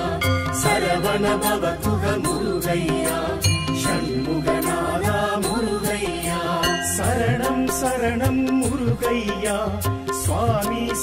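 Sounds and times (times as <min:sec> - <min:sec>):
voices chanting: 0:00.0 - 0:08.0
bell-like chimes: 0:00.2 - 0:07.6.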